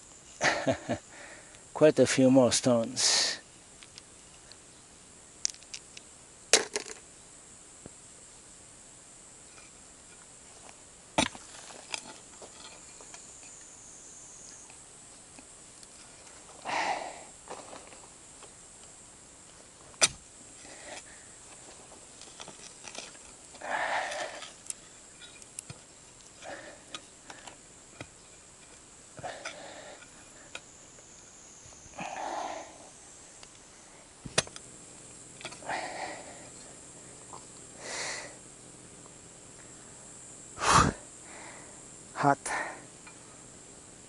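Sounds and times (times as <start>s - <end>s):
man breathing hard: 1.1s - 1.6s, 16.6s - 17.4s, 23.6s - 24.5s, 29.2s - 30.1s, 31.9s - 32.9s, 35.6s - 36.6s, 37.8s - 38.4s, 40.6s - 41.8s, 42.5s - 42.9s.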